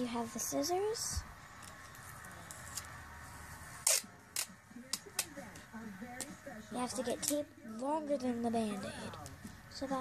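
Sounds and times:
scissors and tape clicks: 3.8s - 4.5s.

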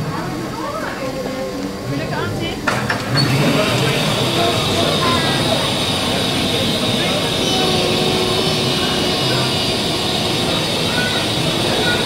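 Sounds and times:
faint voices: 0.0s - 12.0s
steam hissing from locomotive: 0.0s - 12.0s.

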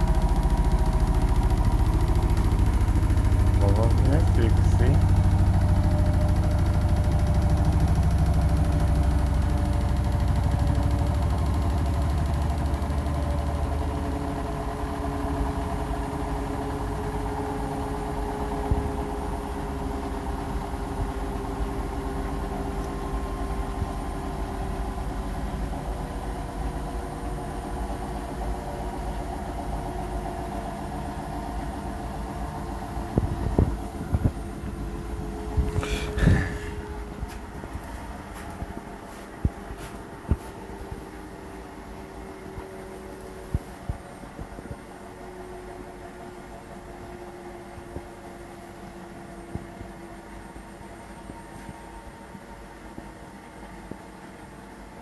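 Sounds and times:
washing machine drum rumble: 0.0s - 44.9s
motor whine falling in pitch: 0.0s - 48.3s.

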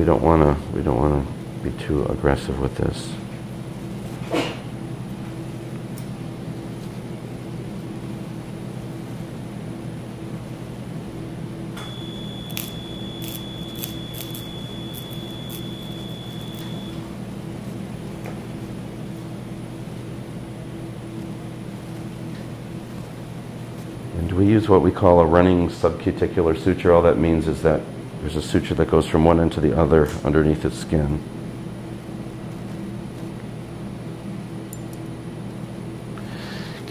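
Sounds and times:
steady low hum: 0.0s - 36.9s
high activation tone: 11.8s - 17.2s.

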